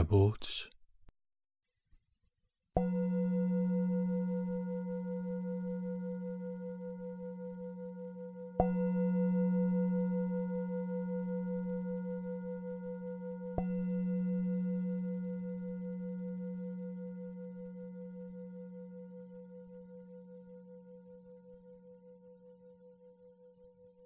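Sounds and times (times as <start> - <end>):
singing bowl ringing: 2.8 - 24.0.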